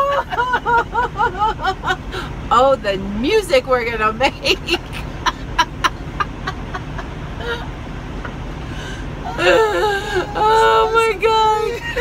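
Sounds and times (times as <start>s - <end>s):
woman laughing breathlessly: 0.0s - 2.4s, 4.8s - 7.7s, 8.7s - 10.8s
truck cab drone: 0.0s - 12.0s.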